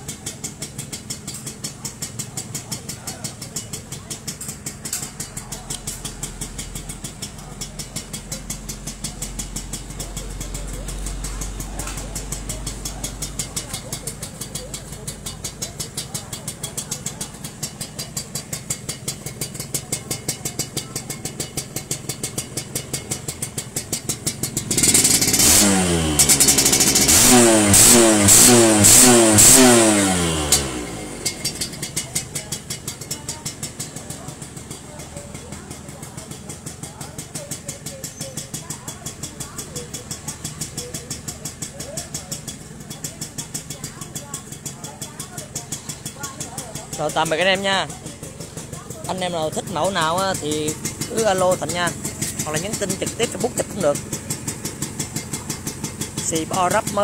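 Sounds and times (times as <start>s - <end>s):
motorcycle engine idling: 0.0s - 57.0s
engine revving in throttle blips: 22.3s - 32.0s.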